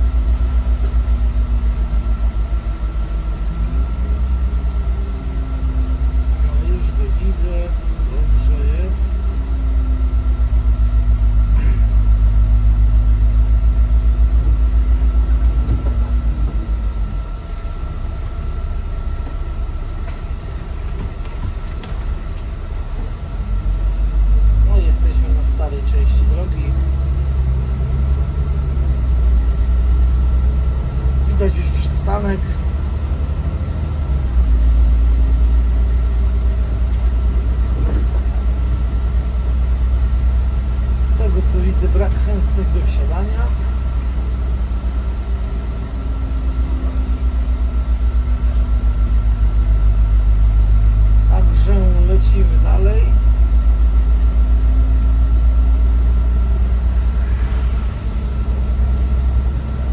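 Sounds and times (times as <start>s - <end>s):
bus engine and road rumble: 0.0s - 59.9s
thin constant whine: 0.0s - 59.9s.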